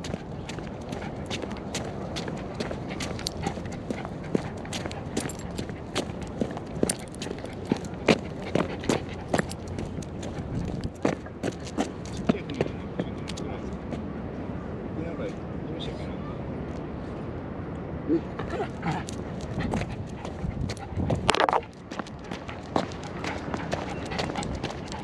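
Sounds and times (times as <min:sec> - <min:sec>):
dog paws clicking on stone: 0:00.0 - 0:12.6, 0:18.9 - 0:25.0.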